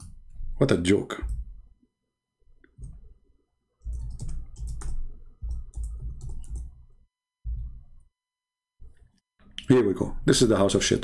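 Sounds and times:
computer keyboard typing: 3.8 - 6.9.

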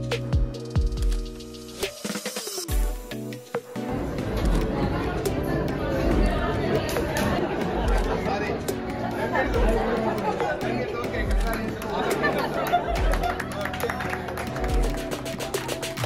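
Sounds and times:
music with slow deep beat: 0.0 - 16.0
people chattering: 3.8 - 16.0.

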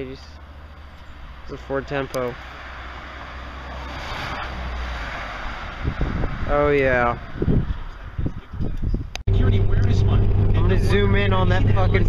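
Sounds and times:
car engine rumbling: 0.0 - 12.0
road noise: 0.0 - 12.0
wind on microphone: 5.6 - 12.0.

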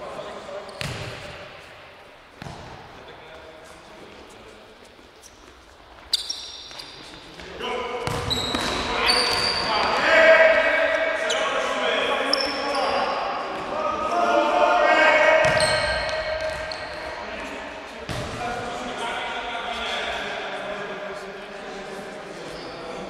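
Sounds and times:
shoe squeaks on court floor: 0.6 - 1.1, 5.1 - 7.4, 8.0 - 9.9, 15.5 - 17.1, 22.4 - 23.0
ball kick: 2.4 - 2.8
players shouting in echoing hall: 7.6 - 21.2.

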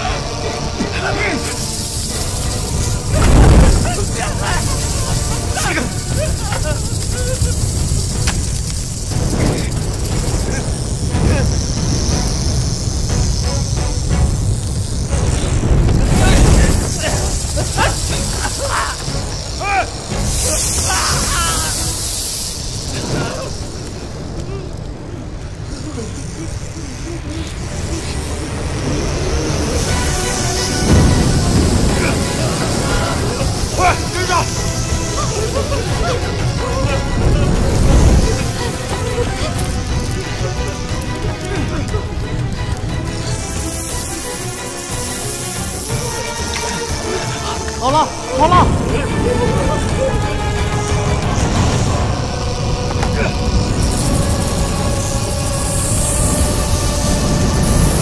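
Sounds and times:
people yelling and grunting: 0.0 - 8.4, 9.3 - 11.8, 16.0 - 57.8
tense film music: 0.0 - 58.0
heavy booming hits: 2.7 - 4.8.

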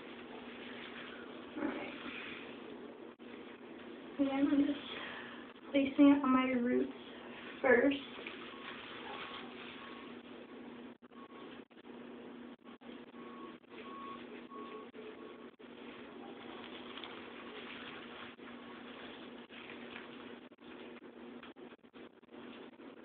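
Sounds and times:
room noise hum and hiss: 0.0 - 23.0.

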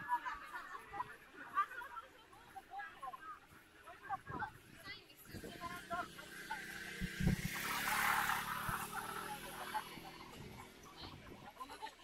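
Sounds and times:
motor scooter engine passing: 5.2 - 11.8.

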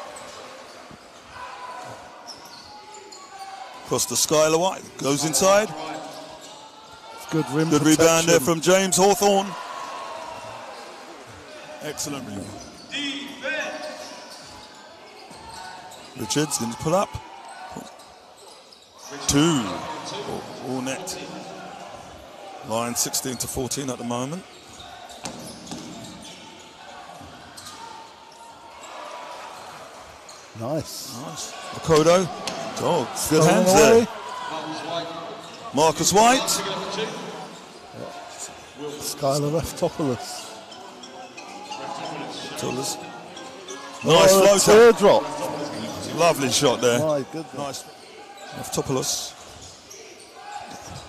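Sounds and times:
arena hall background noise: 0.0 - 51.0.

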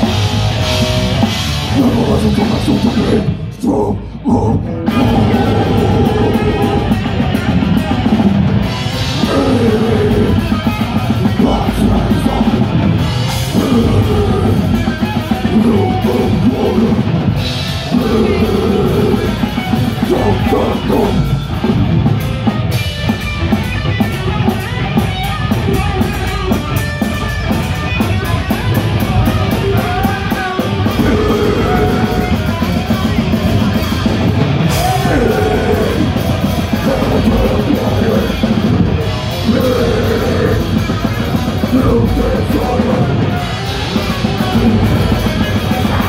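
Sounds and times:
drum kit with fast cymbals: 0.0 - 3.3, 4.9 - 46.0
distorted guitars: 0.0 - 46.0
vocalist singing into mic: 1.7 - 7.8, 9.1 - 12.8, 13.4 - 17.1, 17.9 - 21.3, 29.6 - 33.1, 34.7 - 46.0.

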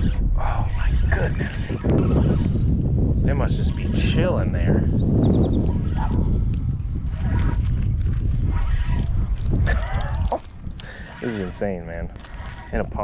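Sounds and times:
microphone handling noise: 0.0 - 13.0
wind rumbling on microphone: 0.0 - 13.0.

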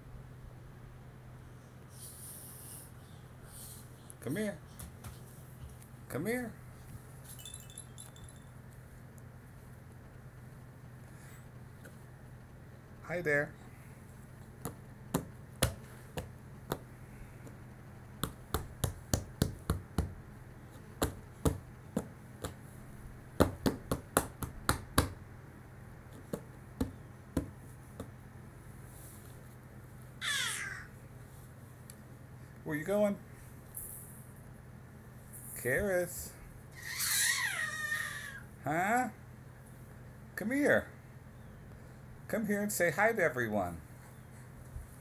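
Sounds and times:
faint low hum: 0.0 - 45.0
small chimes tinkling: 7.2 - 8.6
baby squealing: 30.2 - 30.9, 36.8 - 38.5.

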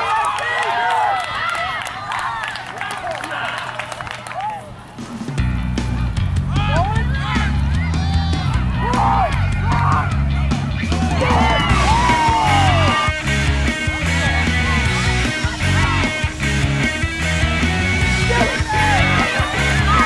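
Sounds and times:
rock song with singing: 7.6 - 20.0.

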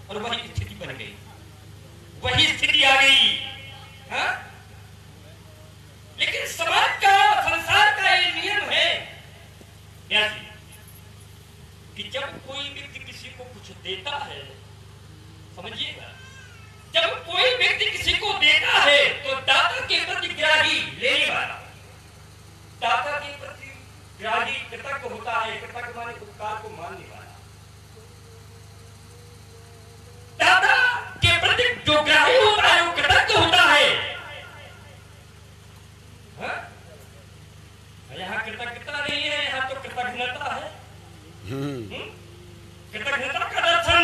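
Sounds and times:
low engine-like hum: 0.0 - 44.0
man's loud high-pitched voice: 2.2 - 4.5, 6.2 - 9.1, 15.6 - 21.5, 30.4 - 34.7, 41.4 - 42.2
faint wavering tone: 41.0 - 43.0.

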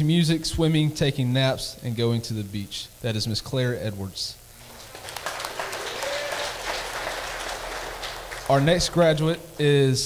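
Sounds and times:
crowd applauding: 4.6 - 9.2.

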